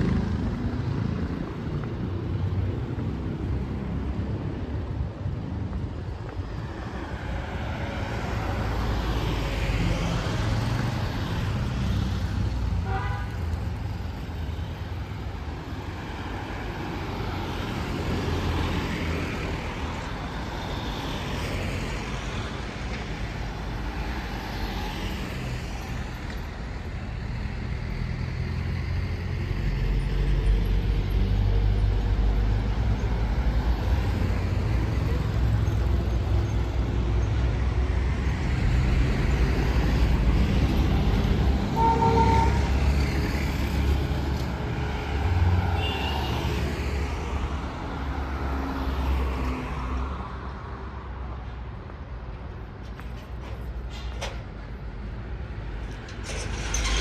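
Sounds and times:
street traffic rumble: 0.0s - 57.0s
vehicle horn toot: 12.8s - 13.4s, 41.8s - 42.7s.

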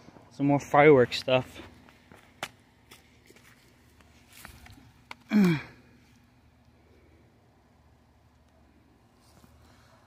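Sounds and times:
man grunting: 5.3s - 5.8s.

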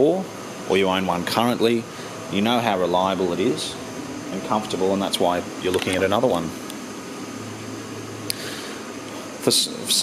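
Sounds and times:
room noise hum and hiss: 0.0s - 10.0s.

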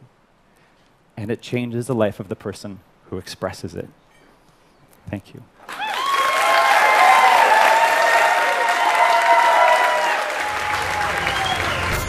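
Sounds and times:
audience applauding: 5.6s - 12.0s.

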